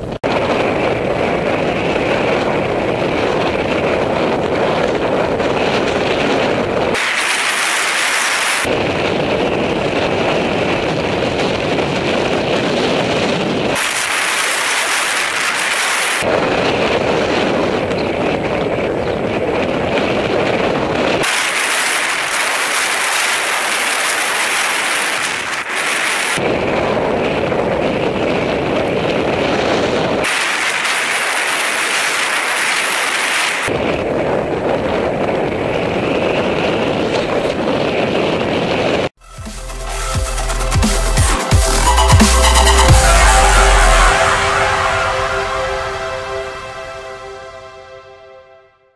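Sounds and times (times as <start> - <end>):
wind buffeting microphone: 0.0 - 39.2.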